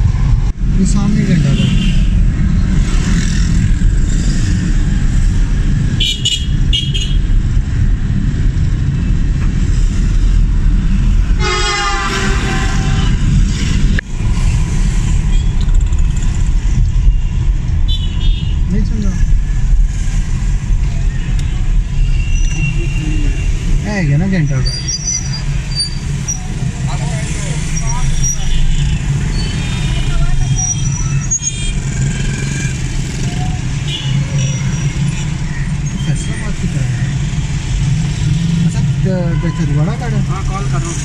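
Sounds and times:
engine and road rumble: 0.0 - 41.0
vehicle horn long blast: 11.4 - 13.2.

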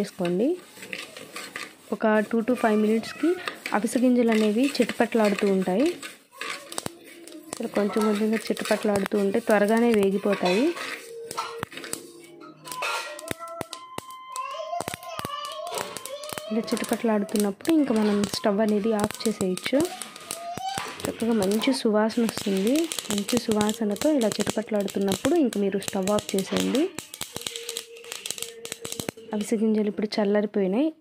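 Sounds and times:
seeds rattling in a pan: 0.0 - 29.7.

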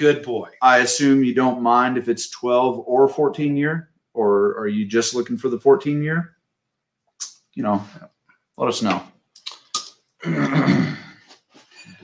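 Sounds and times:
man clearing his throat: 10.2 - 11.3.

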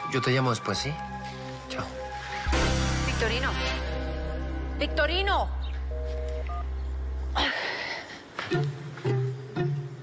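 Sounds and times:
two-note telephone beeps: 5.9 - 6.7.

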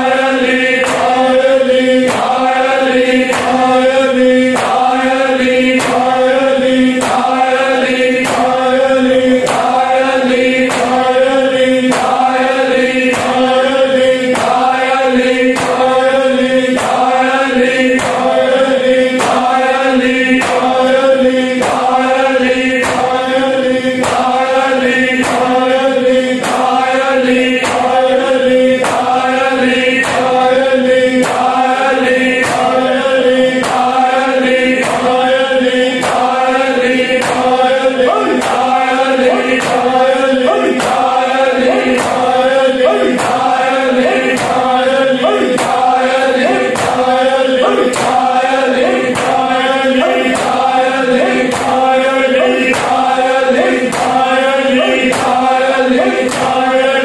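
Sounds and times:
men chanting in unison: 0.0 - 57.0
rhythmic chest-beating: 0.0 - 57.0
steady held drone: 0.0 - 57.0.

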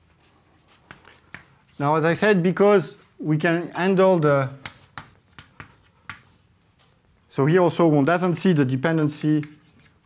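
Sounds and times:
chalk writing on a blackboard: 0.7 - 1.7, 4.5 - 6.6, 9.4 - 10.0.

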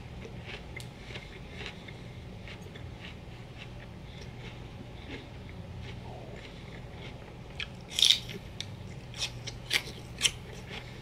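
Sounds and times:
chewing crunches: 0.0 - 11.0
celery crunch: 5.8 - 11.0.

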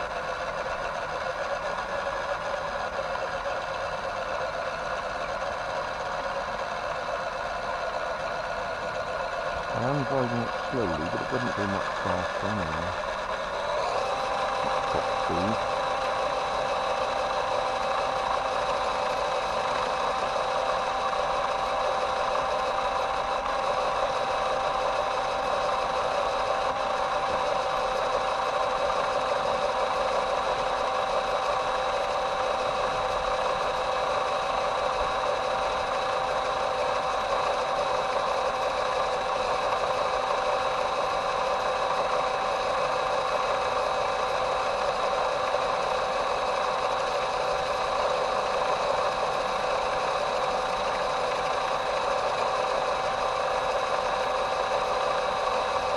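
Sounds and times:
toy truck motor whining: 0.0 - 55.9.

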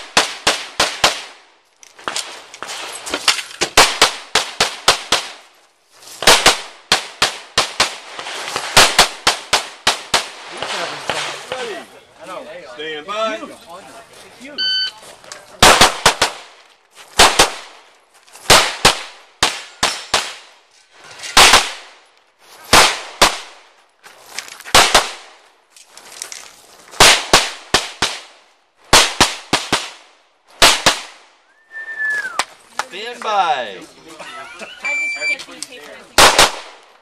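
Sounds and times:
pistol shots: 8.6 - 11.3, 15.6 - 16.5, 17.2 - 17.8, 21.4 - 21.9, 24.7 - 25.3, 36.2 - 36.8
short falling whistle: 31.5 - 32.4.

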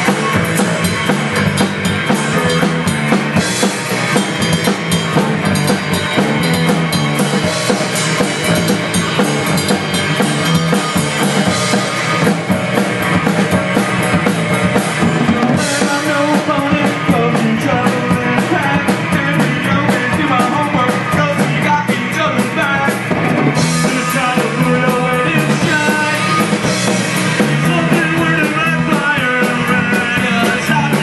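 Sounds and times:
drum kit: 0.0 - 31.0
electric guitar: 0.0 - 31.0.

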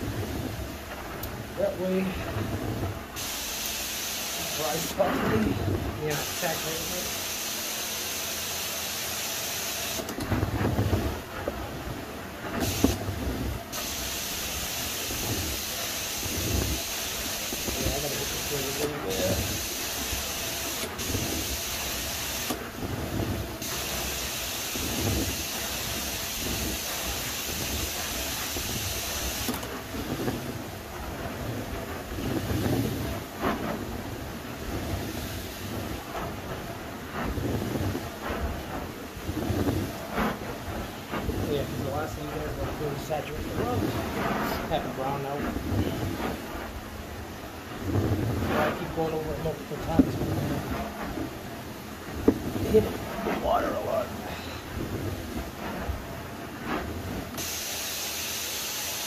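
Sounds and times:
vacuum suction drawing water: 0.0 - 59.0
spray hiss: 3.2 - 10.1, 12.5 - 30.4, 57.3 - 59.0.

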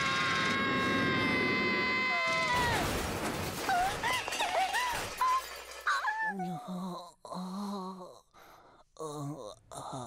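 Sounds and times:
cartoon crash and clatter: 0.0 - 6.3.

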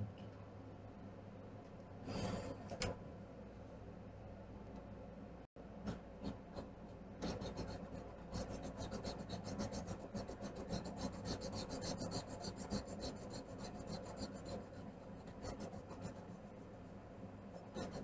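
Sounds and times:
scribbling on paper: 6.2 - 18.0.

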